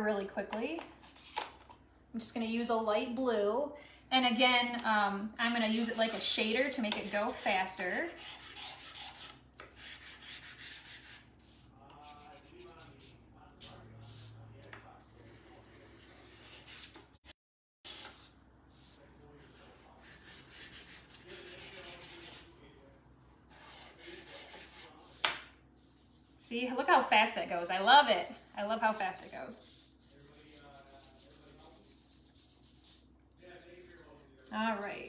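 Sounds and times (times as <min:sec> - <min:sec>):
chalk pastel scratching paper: 0:05.5 - 0:14.4, 0:17.9 - 0:22.5, 0:23.5 - 0:35.0.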